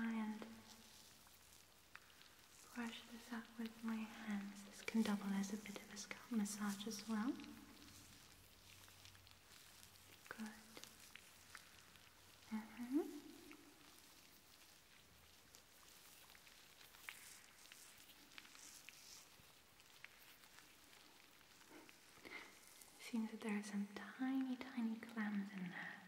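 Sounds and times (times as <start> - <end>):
fingers rustling in hair: 0.2 - 26.0.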